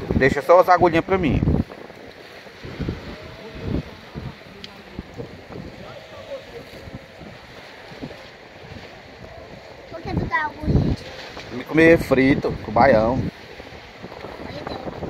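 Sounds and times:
sea surf: 0.0 - 15.0
wind buffeting microphone: 0.0 - 15.0
faint voices: 2.2 - 11.7.

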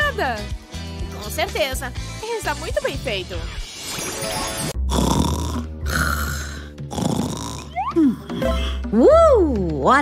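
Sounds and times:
cheerful background music: 0.0 - 3.6, 7.6 - 10.0
person snoring: 4.8 - 8.4.

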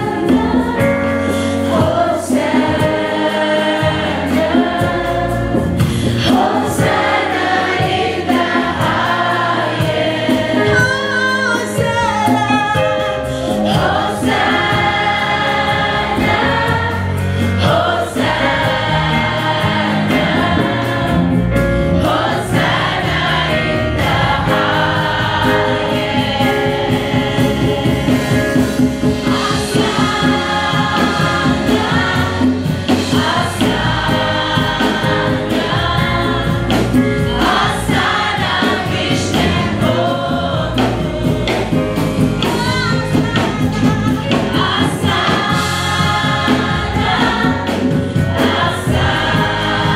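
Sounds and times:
gospel choir singing over a beat: 0.0 - 49.9.

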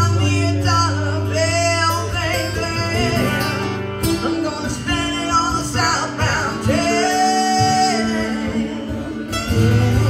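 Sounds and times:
acoustic guitar: 0.0 - 10.0.

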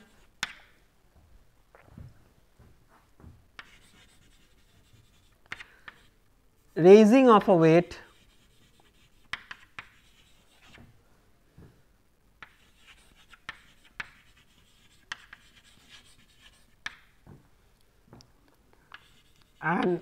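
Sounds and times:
chalk tapping on chalkboard: 3.6 - 6.1, 8.1 - 10.8, 12.4 - 17.2, 18.9 - 20.0
chalk scratching on chalkboard: 3.6 - 6.2, 8.0 - 10.8, 12.4 - 17.1, 18.9 - 20.0.

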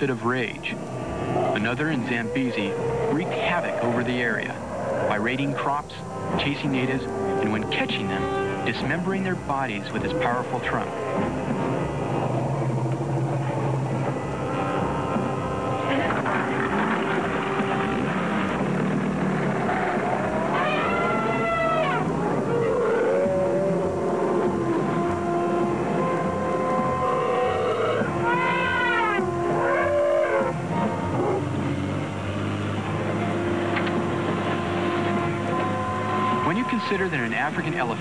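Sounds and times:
background score held notes: 0.0 - 38.0
elephant trumpeting: 0.0 - 38.0.

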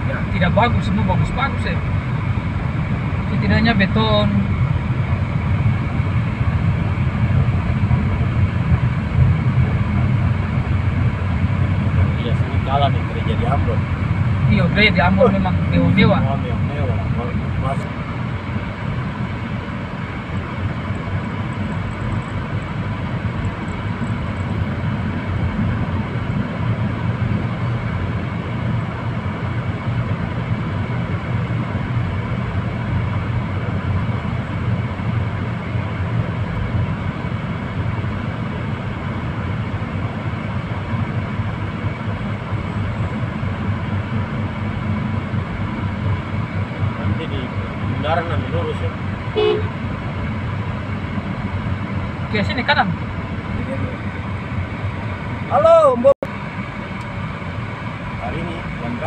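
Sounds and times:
car engine drone: 0.0 - 59.0.

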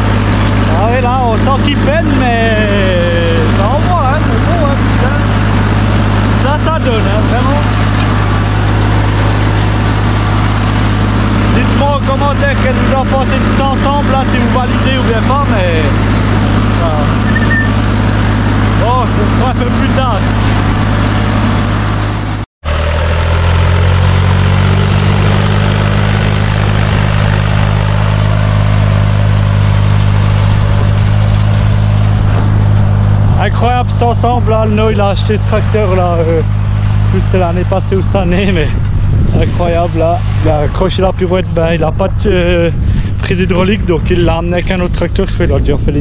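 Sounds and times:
tractor engine labouring under load: 0.0 - 46.0.

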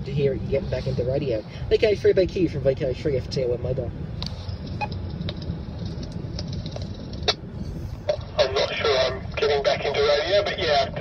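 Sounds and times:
car cabin road and engine noise: 0.0 - 11.0.

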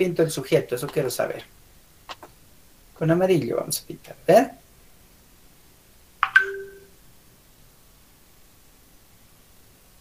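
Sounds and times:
electronic notification chime: 6.2 - 6.9.

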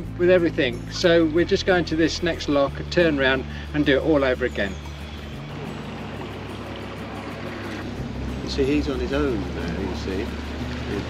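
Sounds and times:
water rippling along boat hull: 0.0 - 11.0.

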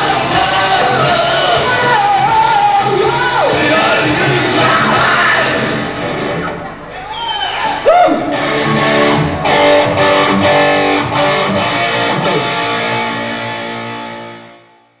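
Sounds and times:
hard rock band with distorted guitars: 0.0 - 6.9, 7.7 - 14.6.

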